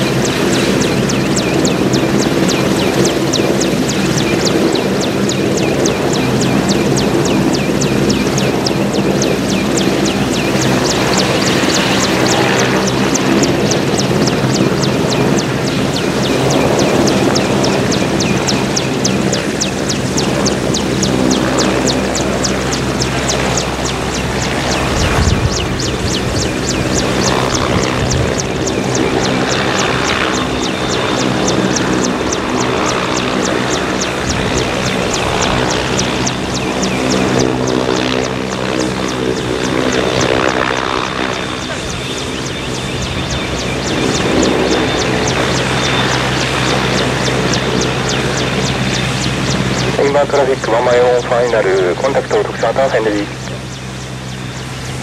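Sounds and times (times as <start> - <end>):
helicopter rotor beat: 0.0 - 55.0
helicopter turbine whine: 0.0 - 55.0.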